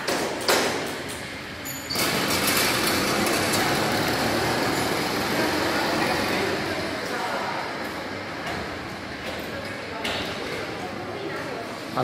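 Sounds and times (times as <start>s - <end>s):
motorized bicycle engine running: 1.9s - 6.9s.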